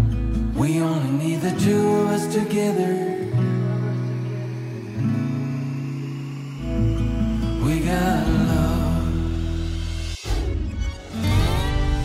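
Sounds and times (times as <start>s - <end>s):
pop love song with acoustic guitar: 0.0s - 12.0s.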